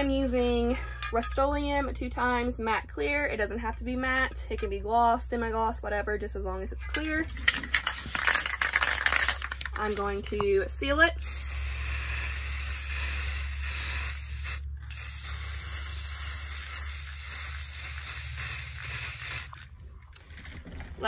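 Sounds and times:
aerosol spray can hissing: 11.2s - 19.6s.

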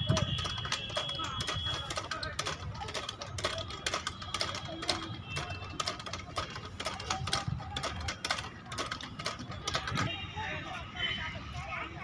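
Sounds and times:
elliptical trainer clicking and knocking: 0.0s - 10.2s.

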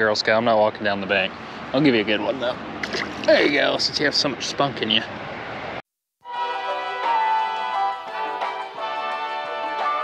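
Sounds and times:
steady outdoor noise: 0.0s - 5.8s.

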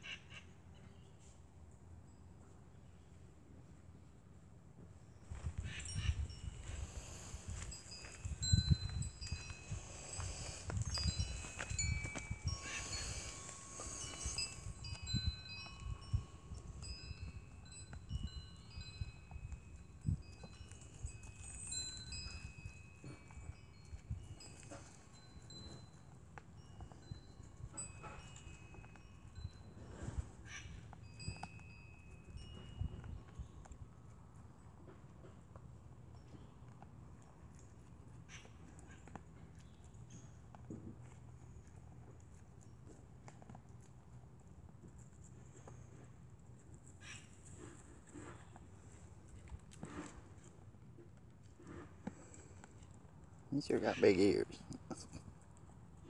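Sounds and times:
wind chimes ringing: 5.1s - 34.0s, 51.6s - 54.7s
deer crunching and chewing: 5.2s - 56.0s.

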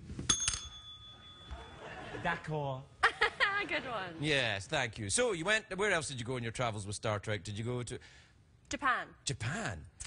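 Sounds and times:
desk service bell ringing: 0.3s - 2.2s.

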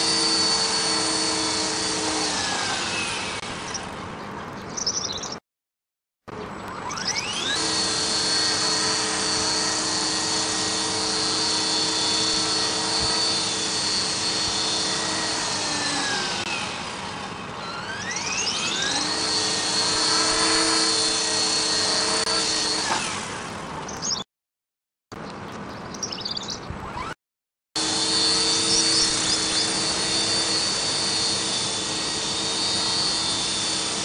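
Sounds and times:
model helicopter motor and rotors whining: 0.0s - 3.9s, 6.3s - 24.2s, 26.8s - 27.2s, 27.8s - 34.0s.

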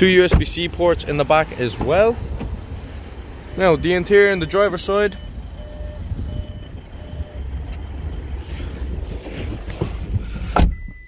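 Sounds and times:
electronic warning beeps: 3.5s - 7.5s
low rumble: 5.2s - 10.6s.

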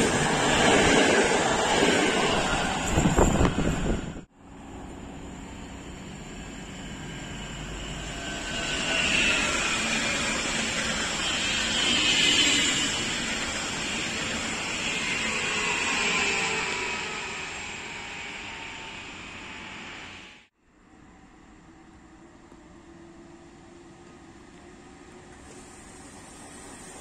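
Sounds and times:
wheel and rail noise: 0.0s - 20.4s
electric train passing: 0.0s - 27.0s.

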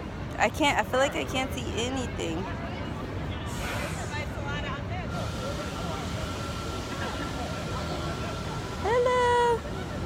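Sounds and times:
traffic rumble: 0.0s - 10.0s
faint voices: 0.3s - 10.0s.

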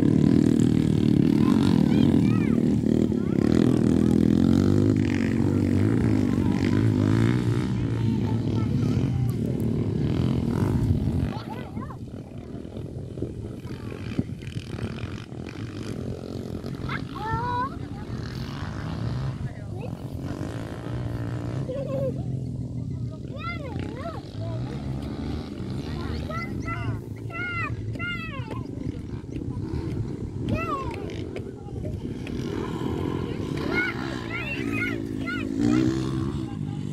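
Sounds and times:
dirt bike engines revving: 0.0s - 36.9s.

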